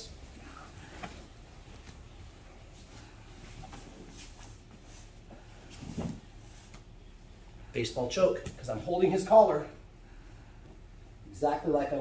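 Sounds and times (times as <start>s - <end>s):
cloth rustling on a mat: 0.1s - 6.9s.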